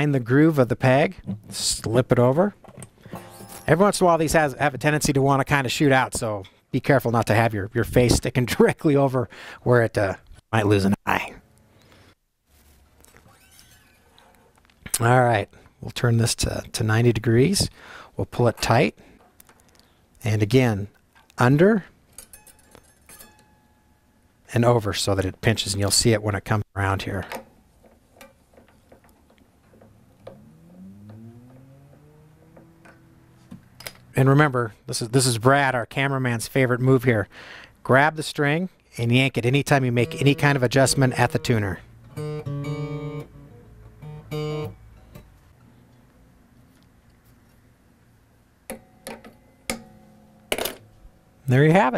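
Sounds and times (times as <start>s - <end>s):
guitar string ringing faintly: 3.1s - 3.9s, 39.5s - 45.2s.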